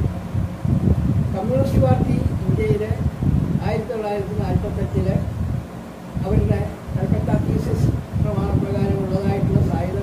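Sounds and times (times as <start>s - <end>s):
man talking: 1.4s - 5.3s, 6.2s - 10.0s.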